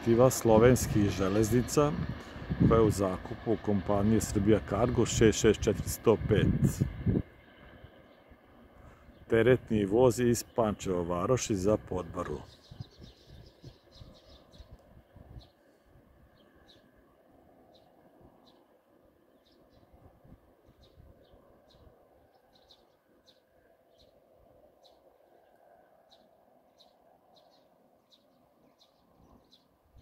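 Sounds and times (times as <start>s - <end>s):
small bird chirping: 12.4s - 15.7s, 17.7s - 20.0s, 20.6s - 30.0s.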